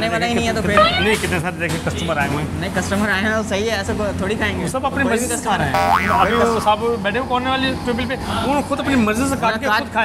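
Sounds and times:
sliding comedy tone: 5.8s - 6.7s.

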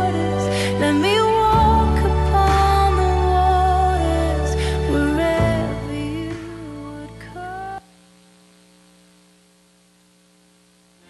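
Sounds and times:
music with held sung note: 0.0s - 7.8s
faint electrical mains hum: 3.1s - 11.0s.

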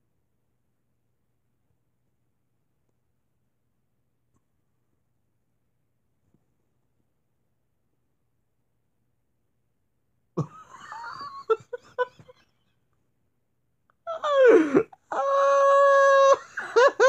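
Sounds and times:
person making non-speech cries: 14.1s - 17.0s.

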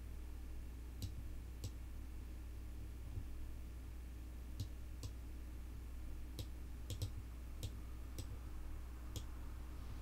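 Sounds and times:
low electrical hum: 0.0s - 10.0s
computer mouse clicking: 6.4s - 8.4s.

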